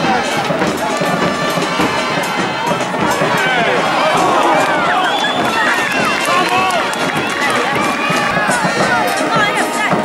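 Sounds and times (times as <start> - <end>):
football crowd shouting: 0.0 - 10.0.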